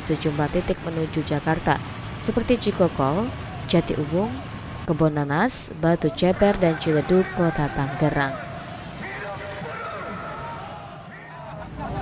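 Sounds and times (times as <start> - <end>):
motorcycle engines running: 0.0 - 10.5
car engines running: 0.0 - 12.0
crowd voices: 5.7 - 12.0.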